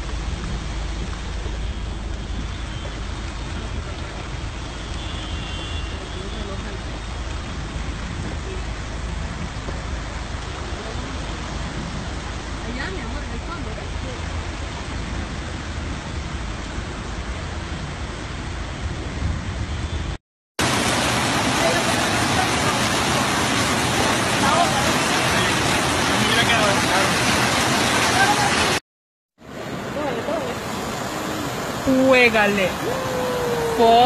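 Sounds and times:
floodwater rushing: 0.0 - 18.8, 20.6 - 28.8, 29.4 - 34.0
heavy rain: 0.0 - 19.6, 20.6 - 28.8, 29.4 - 34.0.

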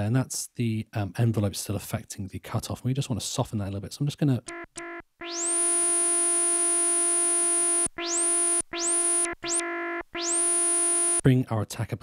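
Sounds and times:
synth lead tone: 4.5 - 11.2.

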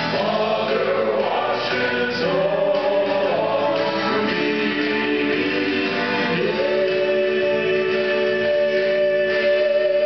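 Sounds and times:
male vocal group singing in harmony: 0.0 - 10.0.

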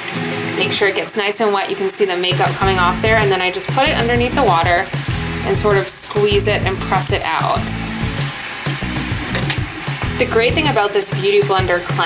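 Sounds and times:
tap water running into sink: 0.0 - 12.0.

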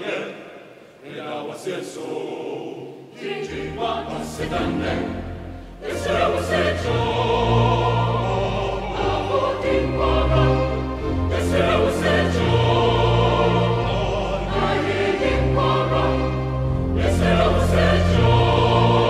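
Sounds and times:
mixed choir singing in harmony: 0.0 - 19.0.

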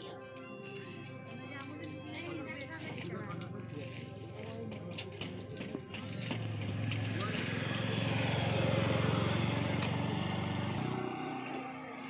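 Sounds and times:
motorcycle engine passing by: 6.2 - 12.0.

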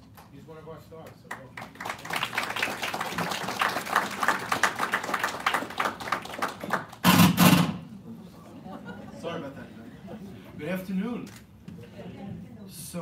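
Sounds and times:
audience applauding: 1.2 - 7.1.

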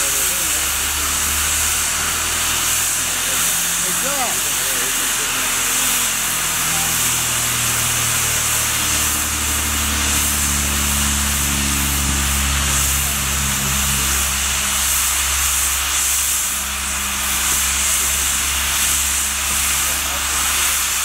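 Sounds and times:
steam locomotive hissing: 0.0 - 21.0
low steady hum: 6.2 - 20.8.

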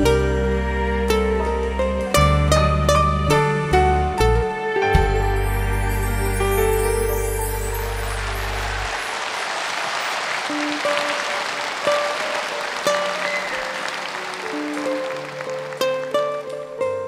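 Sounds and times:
plucked-string instrumental: 0.0 - 9.1, 10.5 - 17.0
audience applauding: 7.7 - 16.8.

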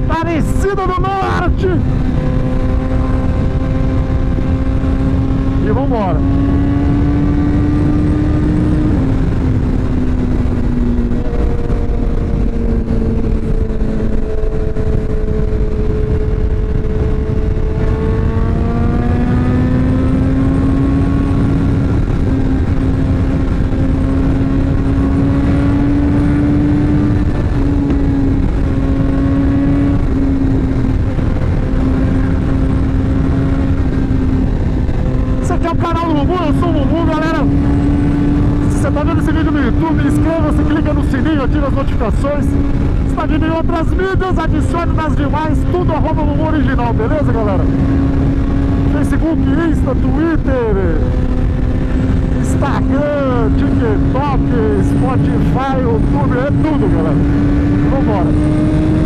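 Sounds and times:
motorcycle engine cruising: 0.0 - 59.0
wind and road rush: 0.0 - 59.0.

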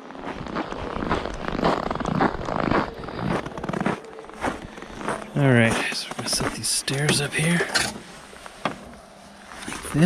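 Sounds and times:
footsteps crunching on frozen snow: 0.0 - 10.0.

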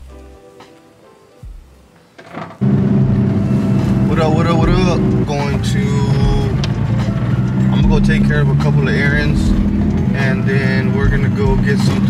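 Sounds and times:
background music: 0.0 - 12.0
car engine running inside cabin: 2.6 - 12.0
singing: 5.3 - 12.0.

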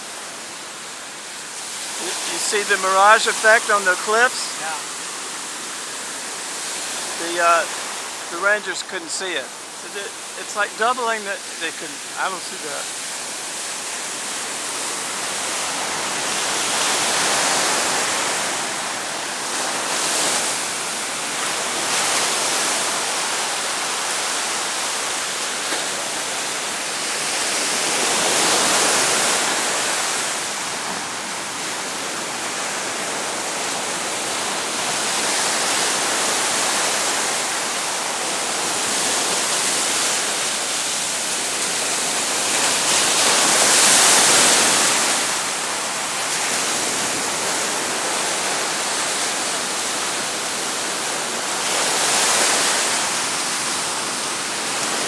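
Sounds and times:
ocean surf breaking on beach: 0.0 - 55.0.

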